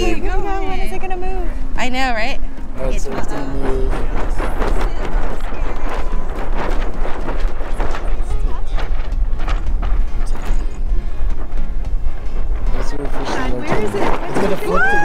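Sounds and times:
wind buffeting microphone: 0.0 - 15.0
sail flapping and snapping: 2.5 - 15.0.

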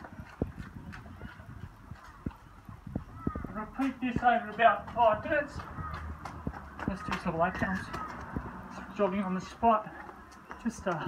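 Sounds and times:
jogging footsteps on concrete: 0.0 - 11.0.

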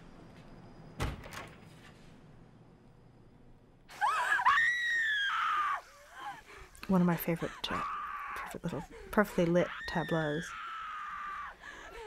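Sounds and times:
woman screaming: 3.9 - 6.5, 7.4 - 9.0, 9.6 - 11.8.

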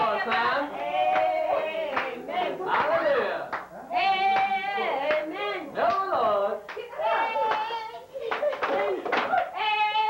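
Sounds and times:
group singing a hymn: 0.0 - 8.0.

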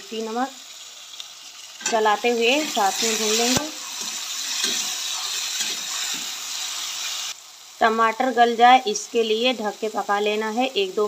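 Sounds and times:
vegetables sizzling in oil: 0.0 - 11.0
spatula stirring in a pan: 0.8 - 7.4.

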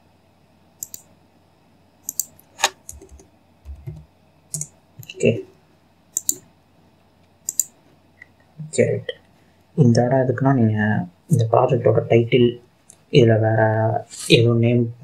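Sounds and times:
mouse and keyboard clicks: 0.8 - 1.1, 2.1 - 4.0, 6.2 - 6.4, 7.5 - 7.8.

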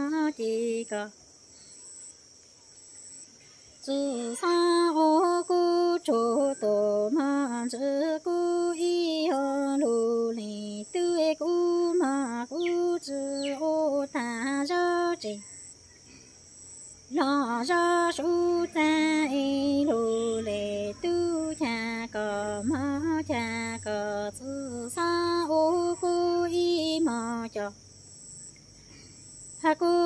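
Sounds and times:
woman singing: 0.0 - 1.2, 3.8 - 15.4, 17.1 - 27.8, 29.6 - 30.0
insects chirring: 0.0 - 30.0.

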